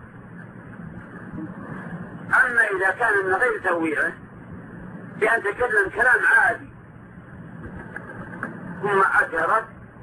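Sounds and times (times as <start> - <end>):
faint recording hum and hiss: 0.0 - 10.0
man speaking: 5.2 - 6.7, 8.8 - 9.8.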